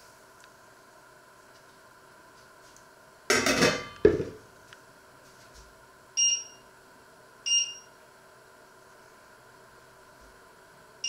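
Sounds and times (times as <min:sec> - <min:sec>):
metal lid clattering on pot: 0:03.3 - 0:04.4
short electronic beeps: 0:07.5 - 0:07.9.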